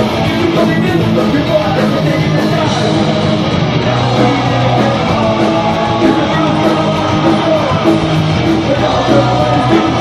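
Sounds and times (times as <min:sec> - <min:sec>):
electric guitar: 0:00.0 - 0:10.0
rock band playing live: 0:00.0 - 0:10.0.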